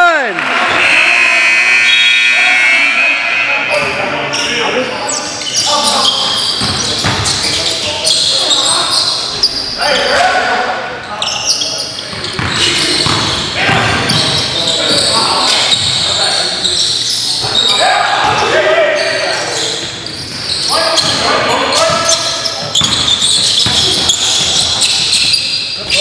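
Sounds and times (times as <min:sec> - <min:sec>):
indistinct player voices: 0:00.6 - 0:06.5
basketball bouncing on hardwood: 0:12.2 - 0:13.8.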